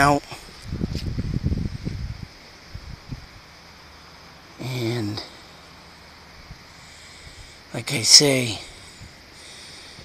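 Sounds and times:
microphone buffeting and rustling: 0.0s - 3.4s
faint high hiss: 0.0s - 10.0s.

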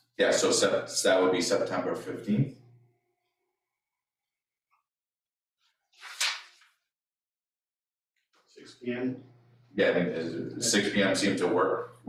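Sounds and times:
paper rustle: 6.0s - 6.6s.

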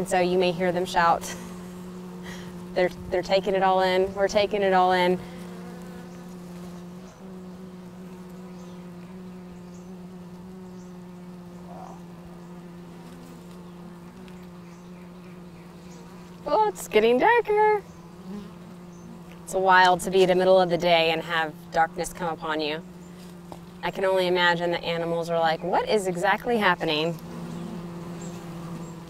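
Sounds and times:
bees humming: 0.0s - 29.0s.

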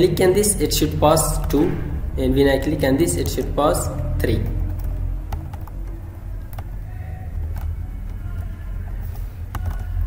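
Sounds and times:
low rumble: 0.0s - 9.1s
keyboard clicks: 1.3s - 1.8s, 2.5s - 10.0s.

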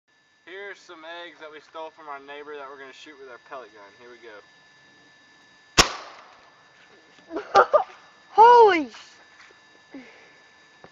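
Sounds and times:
pellet rifle shot: 5.8s - 6.4s.

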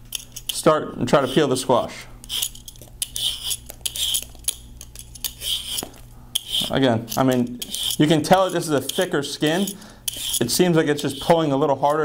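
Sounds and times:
peeler scraping squash skin: 0.0s - 1.6s, 2.2s - 12.0s.

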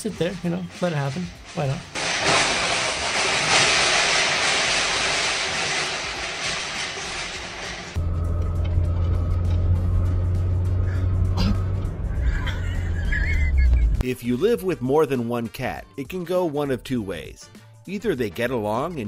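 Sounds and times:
goods crashing off shelving: 1.4s - 8.0s
deep low hum: 8.0s - 14.0s.

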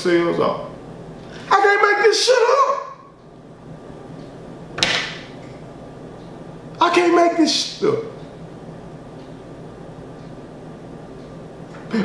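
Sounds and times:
hands slapping wooden tabletop: 4.8s - 5.2s.

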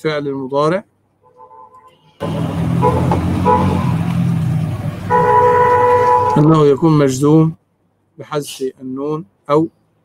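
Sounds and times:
horn tooting: 1.2s - 6.8s
loud rushing traffic noise: 1.3s - 6.9s.

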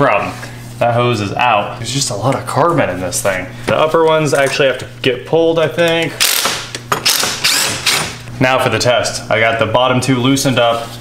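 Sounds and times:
cordless ratchet spinning bolts: 6.2s - 8.2s.

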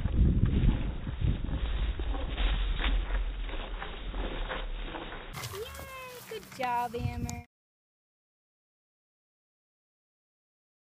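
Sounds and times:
dull low rumble: 0.0s - 5.3s.

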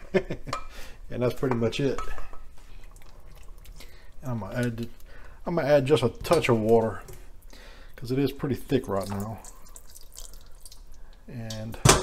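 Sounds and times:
wet squishing of gravy: 2.2s - 11.7s
small clicks from gravy: 4.4s - 5.1s.

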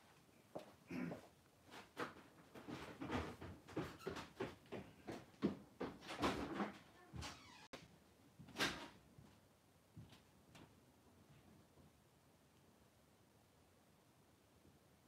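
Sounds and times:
knocking and clattering of cupboards: 1.9s - 7.3s.

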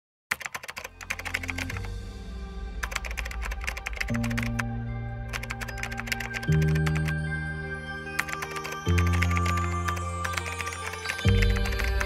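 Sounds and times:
rapid keyboard typing clicks: 0.3s - 1.9s, 2.8s - 4.6s, 5.3s - 7.1s, 8.2s - 12.0s
background music with low notes: 0.3s - 12.0s.

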